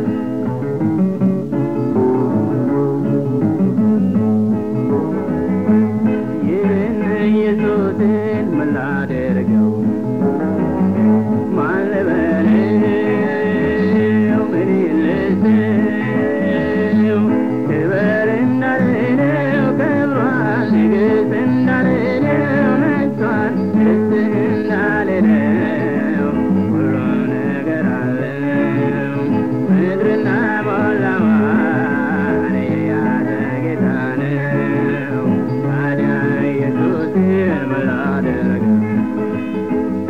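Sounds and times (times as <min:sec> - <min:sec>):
instrumental backing: 0:00.0 - 0:40.0
person singing ornamented melody: 0:06.2 - 0:09.6, 0:11.5 - 0:38.9.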